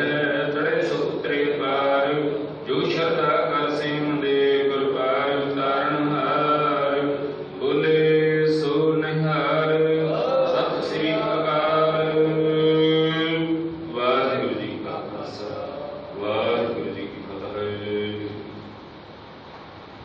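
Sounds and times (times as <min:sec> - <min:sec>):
devotional chanting: 0:00.0 - 0:19.0.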